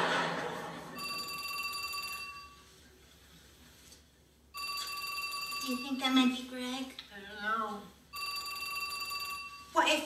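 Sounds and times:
studio audience laughter: 0:00.0 - 0:01.0
telephone ringing: 0:01.0 - 0:02.7, 0:04.5 - 0:06.4, 0:08.1 - 0:09.8.

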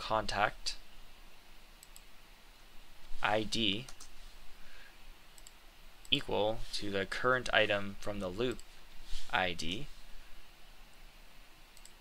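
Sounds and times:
low room hiss: 0:00.0 - 0:12.0
computer mouse clicks: 0:01.8 - 0:02.1, 0:03.8 - 0:04.1, 0:05.4 - 0:06.2, 0:11.8 - 0:12.0.

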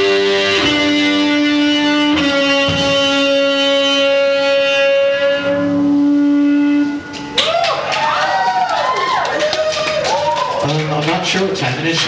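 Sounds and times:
electric guitar note ringing: 0:00.0 - 0:07.6.

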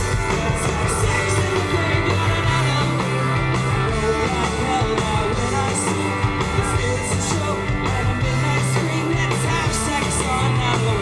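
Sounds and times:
bass guitar: 0:00.0 - 0:11.0
drums: 0:00.0 - 0:11.0
electric guitars: 0:00.0 - 0:11.0.

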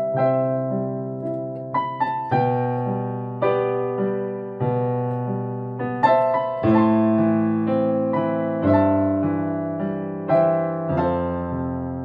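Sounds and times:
electronic piano chords: 0:00.0 - 0:12.0.

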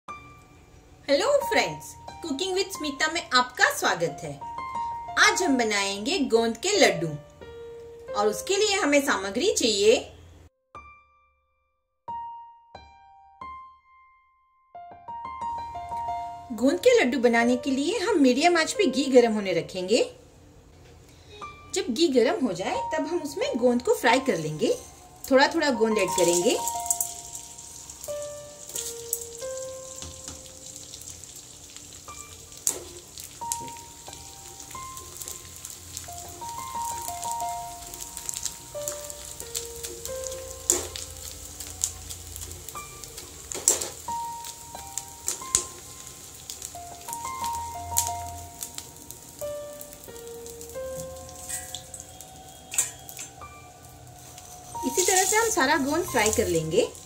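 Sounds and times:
light melodic background music: 0:00.1 - 0:11.4, 0:12.1 - 0:57.0
gum crystals sizzling in ghee: 0:23.3 - 0:57.0
sharp crackles: 0:26.0 - 0:57.0.

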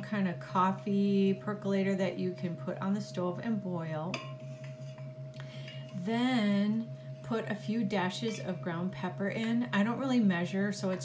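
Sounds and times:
steady low hum: 0:00.0 - 0:11.0
faint held tone: 0:03.6 - 0:11.0.

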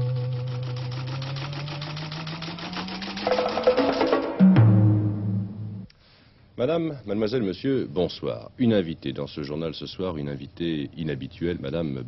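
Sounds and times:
fast ticking pulse: 0:00.0 - 0:04.3
percussive hits: 0:02.6 - 0:05.9.

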